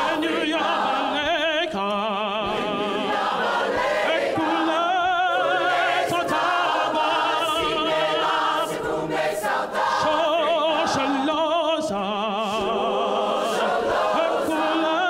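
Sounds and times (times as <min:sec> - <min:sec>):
amplified male soloist singing: 0:00.0 - 0:03.2, 0:04.1 - 0:08.8, 0:10.0 - 0:15.0
choir singing: 0:00.0 - 0:15.0.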